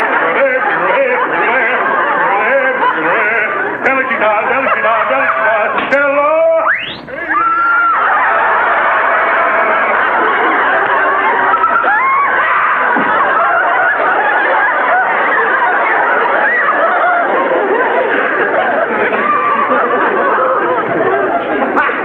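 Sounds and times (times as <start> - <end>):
audience laughing: 0.0 - 22.0.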